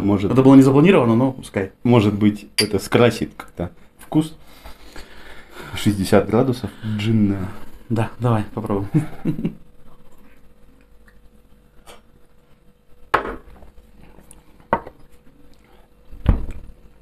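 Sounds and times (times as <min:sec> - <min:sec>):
glasses knocking on table: 0:13.2 - 0:13.5.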